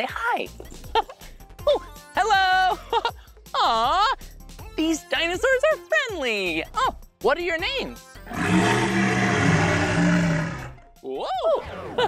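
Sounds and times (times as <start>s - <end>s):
dinosaur roar: 8.3s - 10.8s.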